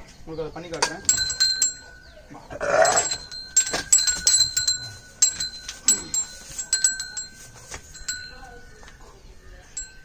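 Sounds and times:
small bell ringing: 0.8 - 10.0.

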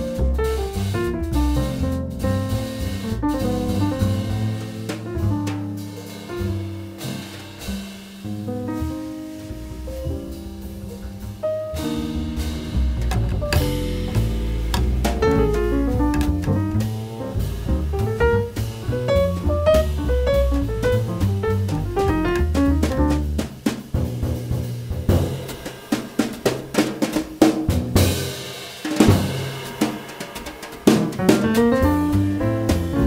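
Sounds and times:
upright bass: 0.0 - 25.5, 31.3 - 33.0
drum kit playing: 0.0 - 33.0
piano: 0.0 - 33.0.

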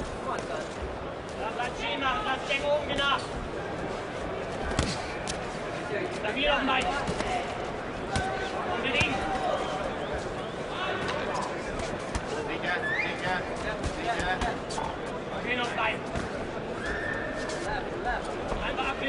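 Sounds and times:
crowd noise: 0.0 - 19.0
feet on ring canvas: 2.5 - 16.6.

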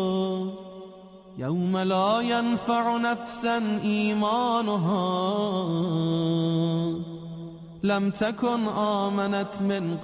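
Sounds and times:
melodic devotional recitation: 0.0 - 10.0.

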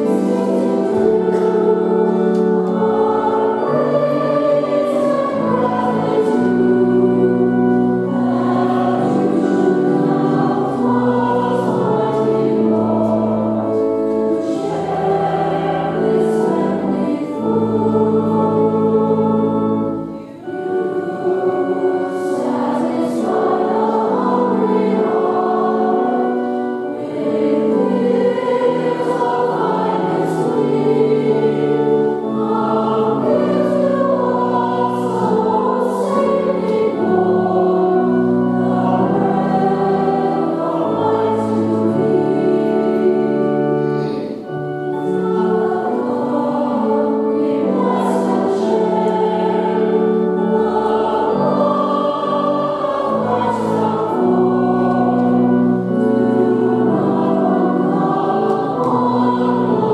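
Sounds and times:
church choir singing: 0.0 - 59.9.

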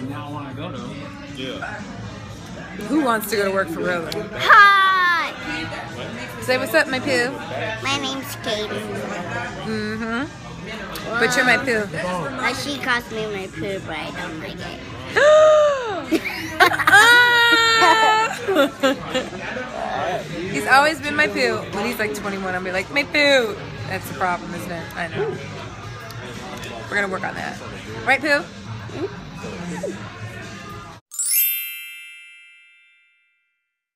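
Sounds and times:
sparkle chime bell-like tones: 31.1 - 33.8.

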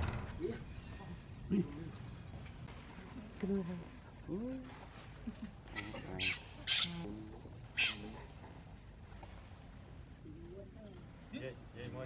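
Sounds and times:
baby monkey screaming: 5.8 - 7.0, 7.7 - 8.0.

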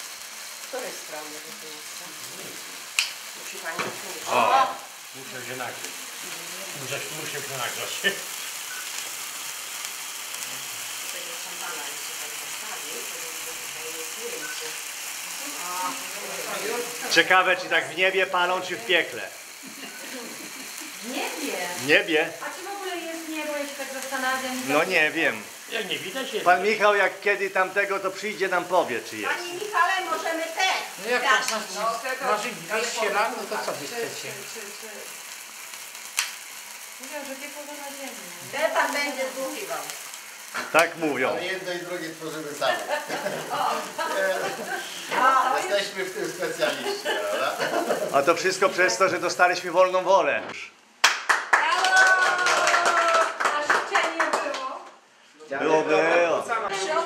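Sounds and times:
sparklers hissing and crackling: 0.0 - 55.3
lighter click: 2.9 - 3.2, 35.7 - 36.7.

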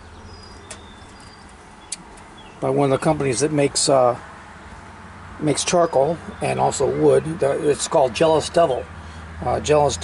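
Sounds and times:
faint bird chirps: 0.0 - 2.6
low steady outdoor hum: 0.0 - 10.0.

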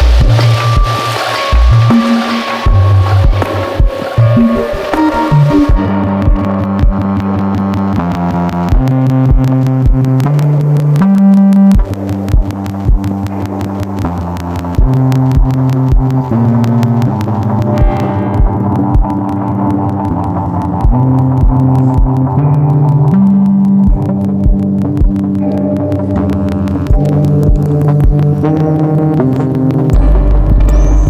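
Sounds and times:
droning synthesizer notes: 0.0 - 31.0.

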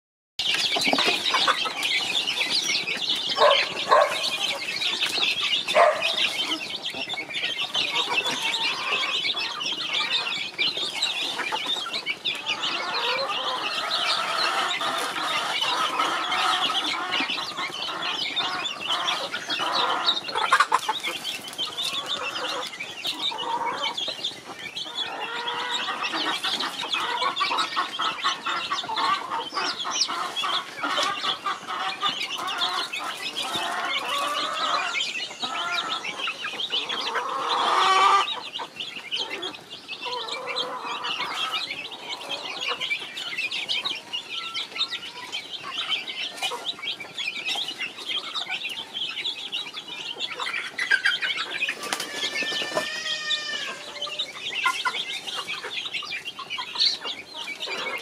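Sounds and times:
louder chick calls: 0.4 - 49.2, 49.8 - 58.0
chicks peeping: 0.4 - 58.0.

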